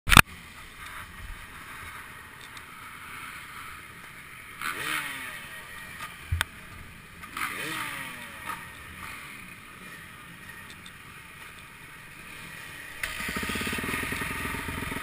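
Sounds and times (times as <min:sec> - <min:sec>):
motorcycle engine bursts: 0:02.7 - 0:10.3, 0:12.2 - 0:15.0.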